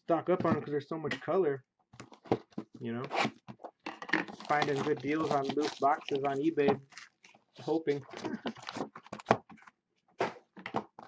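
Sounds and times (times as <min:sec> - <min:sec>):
person speaking: 0:00.0 - 0:01.6, 0:04.4 - 0:06.9, 0:07.5 - 0:08.8.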